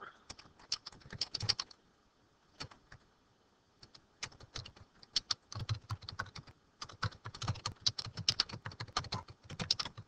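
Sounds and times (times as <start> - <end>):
computer keyboard typing: 0.3 - 1.7, 2.6 - 3.0, 3.8 - 10.0.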